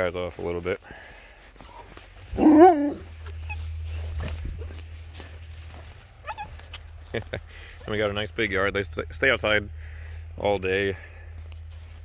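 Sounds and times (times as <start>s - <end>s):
low steady rumble: 1.2s - 12.0s
puppy whimper: 2.3s - 5.0s, 6.2s - 6.8s.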